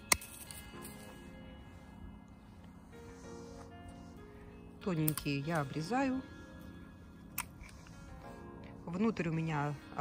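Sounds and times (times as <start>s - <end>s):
secateurs snipping a stem: 0.0s - 0.7s, 5.0s - 5.3s
background music sustained notes: 0.0s - 10.0s.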